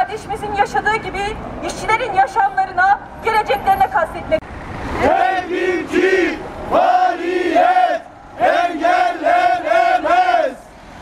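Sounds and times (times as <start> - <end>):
woman speaking through a megaphone: 0.0 - 4.4
crowd chanting in unison: 5.0 - 10.8.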